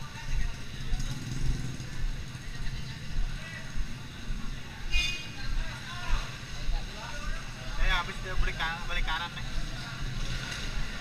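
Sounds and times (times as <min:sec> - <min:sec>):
vehicle engines rumbling: 0:00.0 - 0:11.0.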